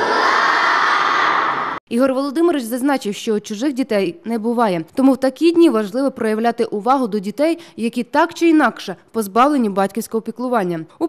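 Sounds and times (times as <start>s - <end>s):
children shouting: 0.0s - 1.8s.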